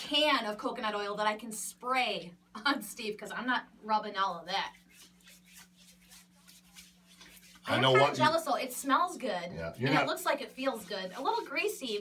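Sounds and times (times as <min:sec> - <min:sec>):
low steady hum: 0:00.0 - 0:12.0
hand rubbing oiled skin: 0:04.7 - 0:08.4, 0:10.2 - 0:12.0.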